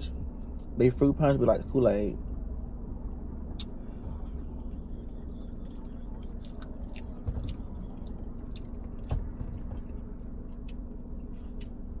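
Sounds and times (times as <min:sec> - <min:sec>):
steady low hum: 0:00.0 - 0:12.0
soft low thumps: 0:03.5 - 0:10.4
person chewing food: 0:04.6 - 0:10.8, 0:11.4 - 0:11.8.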